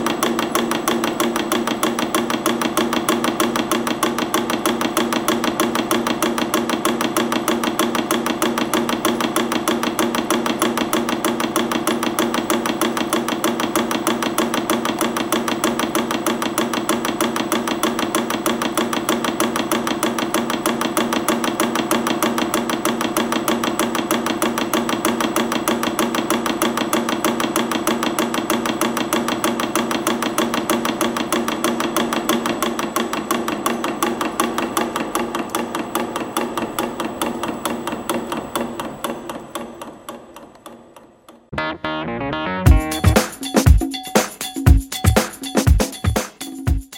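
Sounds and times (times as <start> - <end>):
winding machine clattering: 0.0 - 41.1.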